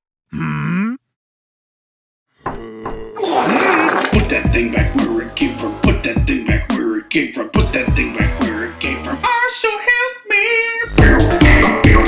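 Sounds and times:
cartoon monster questioning grunt: 0:00.3 - 0:01.1, 0:02.4 - 0:04.2.

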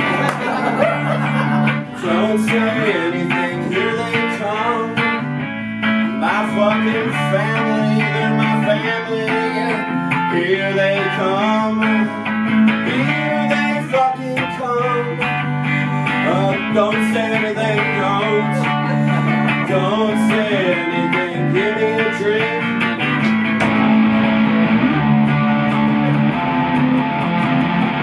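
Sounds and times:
electric guitar with bending notes: 0:00.0 - 0:28.0.

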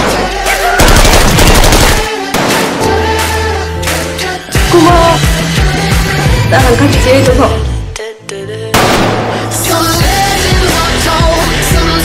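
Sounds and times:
rapid automatic gunfire: 0:00.8 - 0:02.7.

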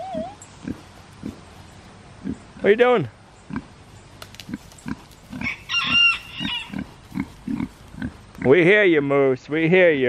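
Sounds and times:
high-pitched pig call: 0:00.0 - 0:00.8, 0:05.3 - 0:08.1
pigs grunting: 0:00.0 - 0:01.4, 0:02.2 - 0:02.8, 0:03.5 - 0:03.7, 0:04.4 - 0:08.7.

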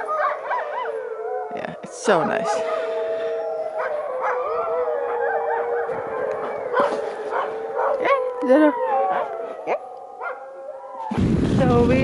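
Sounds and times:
dogs howling together: 0:00.0 - 0:11.1.

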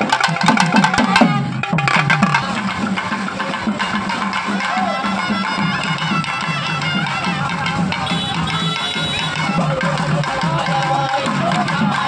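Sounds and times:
drum strokes dropping in pitch: 0:00.0 - 0:11.8
nadaswaram melody: 0:00.0 - 0:12.0.

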